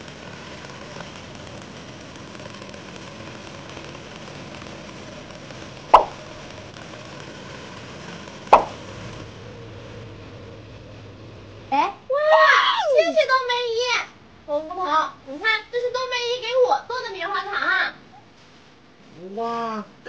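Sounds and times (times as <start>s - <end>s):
loud pops: 0.0s - 10.1s
cotton candy machine whirring: 0.0s - 18.0s.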